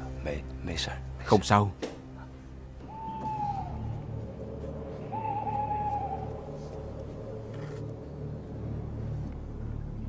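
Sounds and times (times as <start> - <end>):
owl hooting: 2.8 - 7.8.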